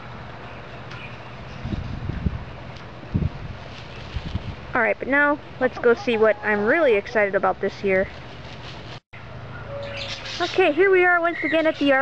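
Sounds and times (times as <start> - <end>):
steady outdoor hiss: 0.0 - 12.0
wind rumbling on microphone: 1.0 - 9.0.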